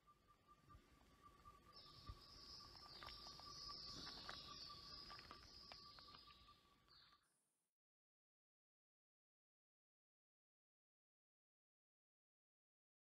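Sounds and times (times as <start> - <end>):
crackle of small ticks: 2.0 - 7.2.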